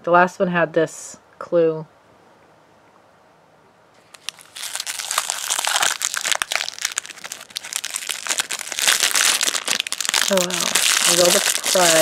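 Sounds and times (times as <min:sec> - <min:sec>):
plastic wrapper crinkling: 0:04.0 - 0:12.0.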